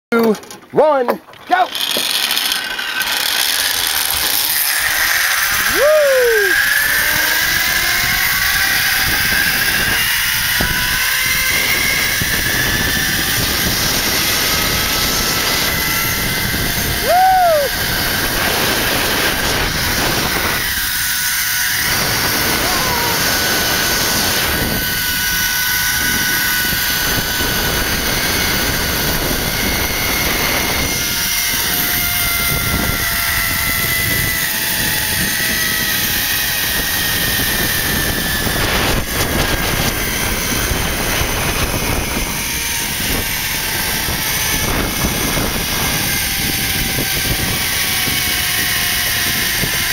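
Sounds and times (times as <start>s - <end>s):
zip-line pulleys whirring on cable: 1.3s - 49.9s
wind rushing over microphone: 4.0s - 49.9s.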